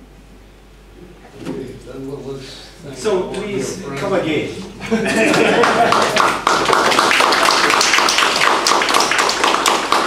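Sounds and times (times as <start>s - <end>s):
audience applauding: 5.1s - 10.0s.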